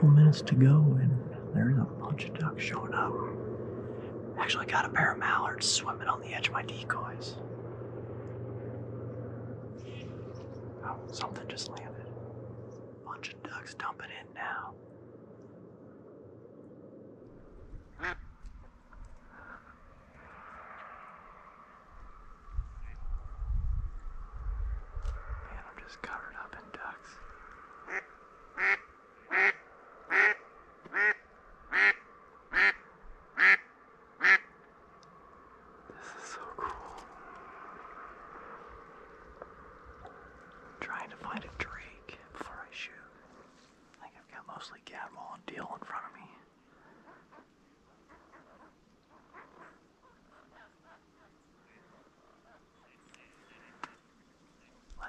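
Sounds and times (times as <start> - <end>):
low rumble: 0.0 - 30.8
ducks quacking softly: 17.9 - 18.3, 27.8 - 34.5
loud duck quacks: 18.0 - 18.2, 27.9 - 32.8, 33.4 - 33.6, 34.2 - 34.5.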